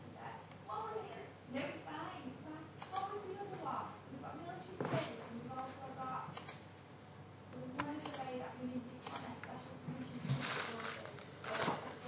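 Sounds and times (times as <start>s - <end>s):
keyboard and mouse clicks: 2.8s - 3.2s, 6.4s - 6.6s, 7.8s - 8.3s, 9.0s - 9.6s.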